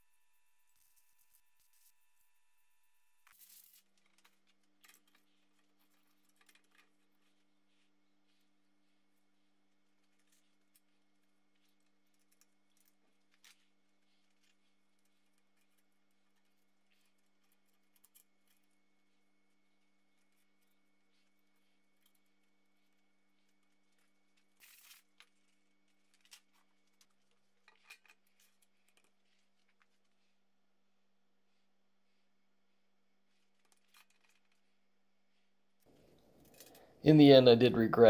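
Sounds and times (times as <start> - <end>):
faint low hum: 0.0 - 38.0.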